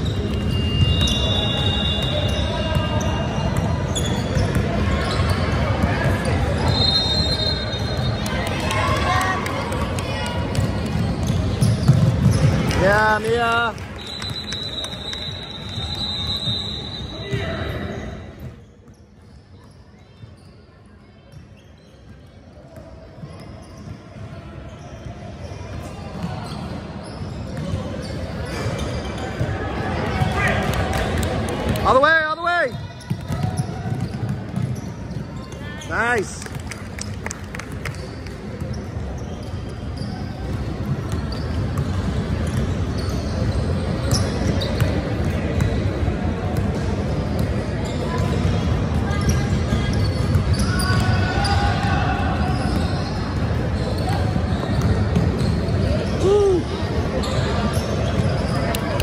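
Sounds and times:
players and spectators voices: 0.0s - 59.0s
loud shout: 56.2s - 56.8s.

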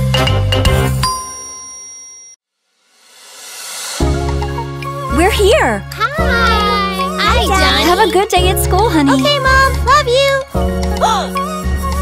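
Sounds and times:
bell-like chime ringing: 1.0s - 2.4s.

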